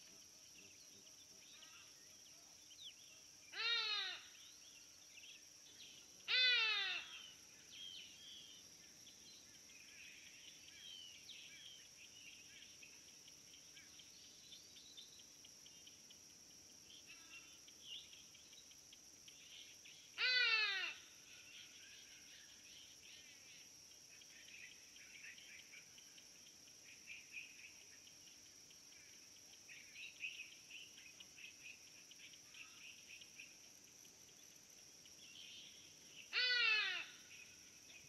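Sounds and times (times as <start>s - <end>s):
insects chirring: 0.0s - 38.0s
baboon crying: 3.6s - 4.2s, 6.3s - 7.0s, 20.2s - 20.9s, 36.4s - 37.0s.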